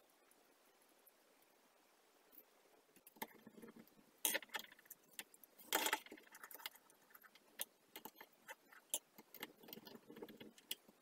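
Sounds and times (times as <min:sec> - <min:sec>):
tools and parts clicking on wood: 0:03.0 - 0:11.0.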